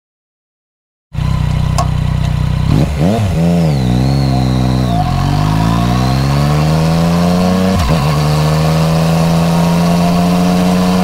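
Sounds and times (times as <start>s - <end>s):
motorcycle engine running: 1.2s - 11.0s.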